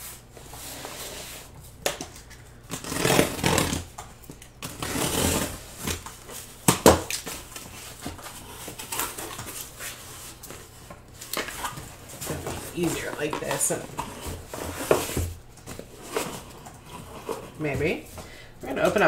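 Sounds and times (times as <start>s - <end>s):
packing tape being cut: 2.7s - 3.9s, 4.6s - 6.1s, 8.3s - 10.4s
cardboard scraping and rustling: 4.7s - 6.5s, 7.2s - 18.1s.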